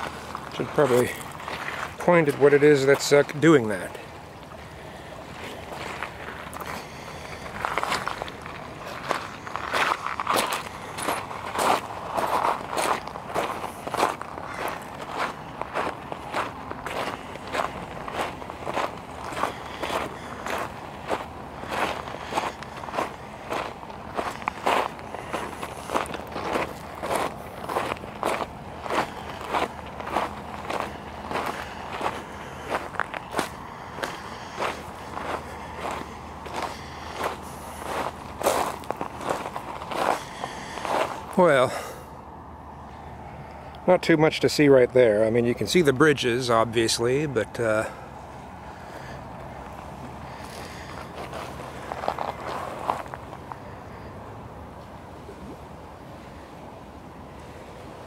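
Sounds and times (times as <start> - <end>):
footsteps crunching on gravel: 0.0 - 41.9, 49.6 - 53.7.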